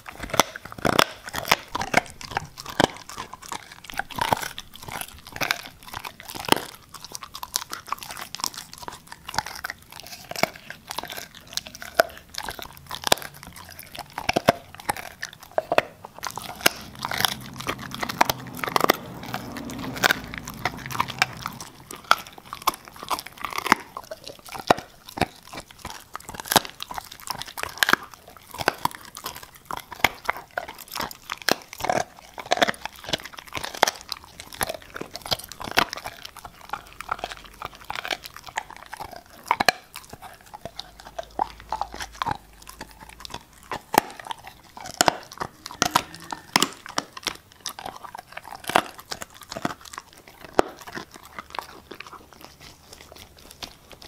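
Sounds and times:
dog chewing meat and bone: 0:00.0 - 0:54.0.

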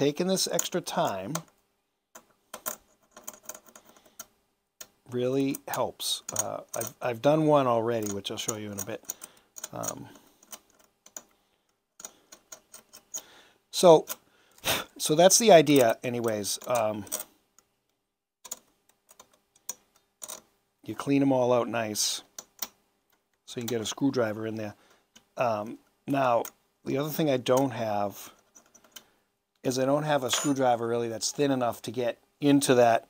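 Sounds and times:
metal pick ticking and scraping screws: 0:02.2 - 0:05.0, 0:08.0 - 0:11.4, 0:12.0 - 0:13.3, 0:28.4 - 0:29.0.

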